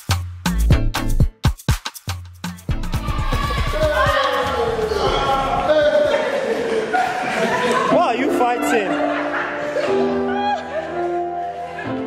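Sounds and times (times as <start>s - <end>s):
people calling out: 2.8s - 11.0s.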